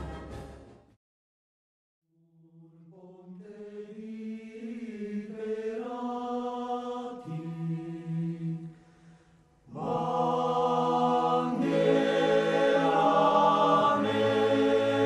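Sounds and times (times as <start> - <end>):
slow choral singing: 2.5 - 15.0.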